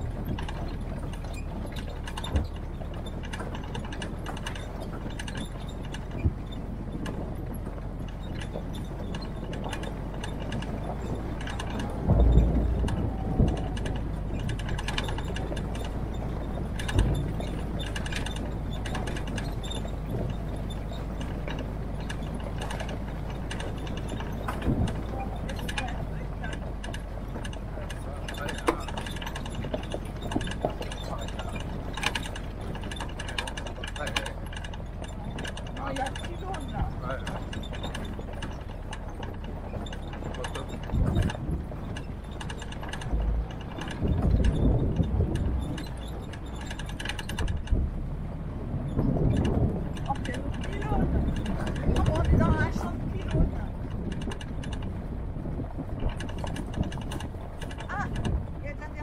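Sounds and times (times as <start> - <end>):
engine drone: 0.0 - 59.0
heavy thump over bumps: 0.0 - 59.0
rattling and clanking of vehicle body: 0.0 - 59.0.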